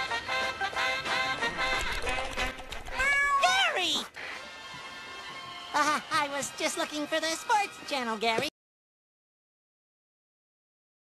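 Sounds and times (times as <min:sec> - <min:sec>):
cartoon cat meows: 0:02.9 - 0:03.9.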